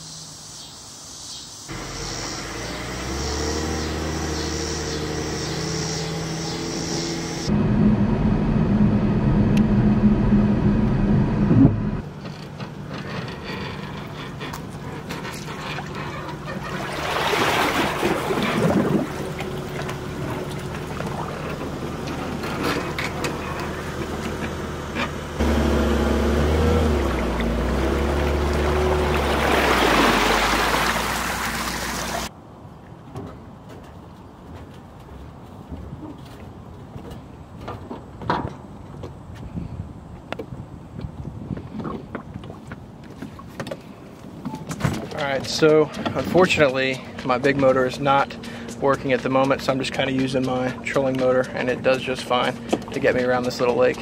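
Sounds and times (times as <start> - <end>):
outboard motor running: 1.7 - 32.3, 45.0 - 54.0
vehicle engine droning: 1.7 - 32.3, 44.9 - 54.0
water splashing and rushing: 14.5 - 24.2, 25.4 - 32.3
water stream splashing: 14.5 - 24.3, 25.4 - 32.3.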